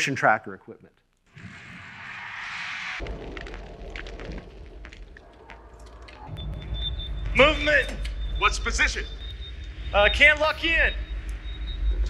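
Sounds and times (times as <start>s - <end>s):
low rumble: 2.0s - 12.0s
steady high tone: 6.3s - 12.0s.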